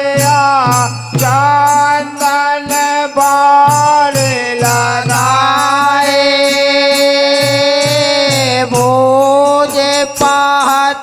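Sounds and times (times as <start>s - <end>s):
harmonium: 0.0s - 11.0s
man singing: 0.0s - 11.0s
small hand cymbals: 0.0s - 11.0s.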